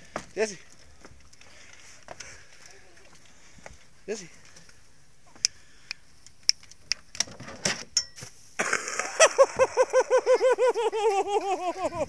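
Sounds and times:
person laughing high-pitched: 8.6s - 12.0s.

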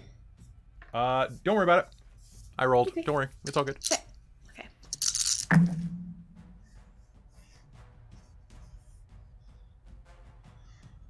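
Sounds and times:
low booming hit: 5.5s - 6.6s.

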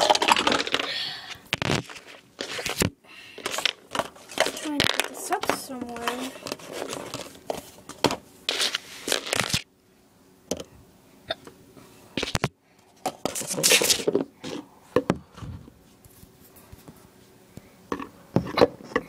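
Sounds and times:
rustling and crinkling: 0.0s - 9.7s, 12.2s - 17.4s.

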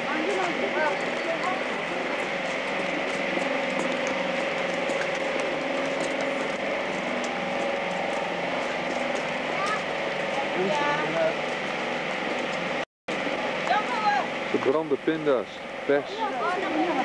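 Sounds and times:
people talking: 0.0s - 2.4s, 9.5s - 11.4s, 13.7s - 17.0s
motor drone: 0.0s - 17.0s.

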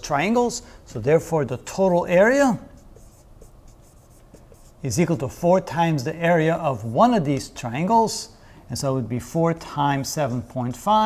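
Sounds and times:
marker writing on whiteboard: 1.7s - 5.4s.

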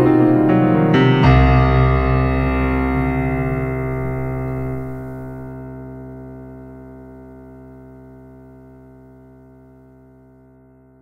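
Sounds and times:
keyboard chord held: 0.0s - 11.0s.

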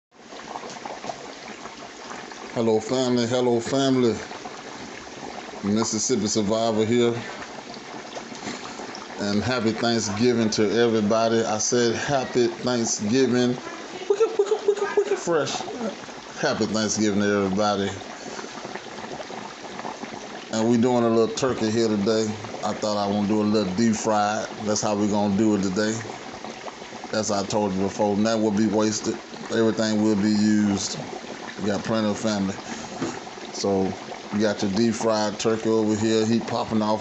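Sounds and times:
hot oil bubbling and crackling: 0.1s - 37.0s.

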